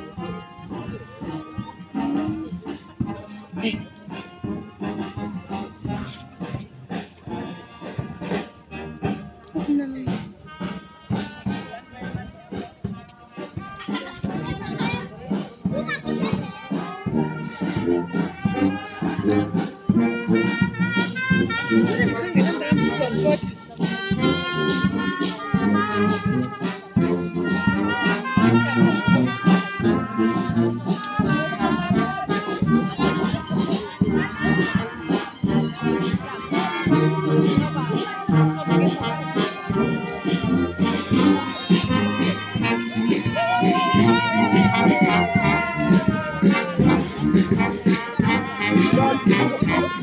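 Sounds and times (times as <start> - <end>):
marching brass band: 0.0 - 50.0.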